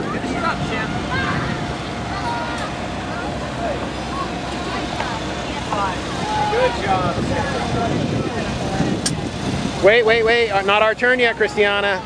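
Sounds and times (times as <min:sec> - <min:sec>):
distant people chattering: 0:00.0 - 0:12.0
steady low rumble: 0:00.0 - 0:12.0.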